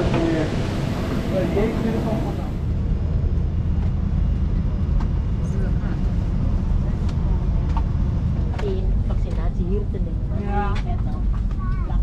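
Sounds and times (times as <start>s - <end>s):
faint passenger chatter: 5.3s - 12.0s.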